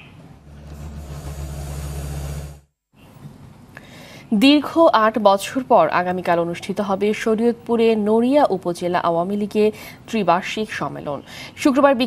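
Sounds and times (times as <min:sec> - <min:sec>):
excavator diesel engine under load: 0:00.0 - 0:02.7.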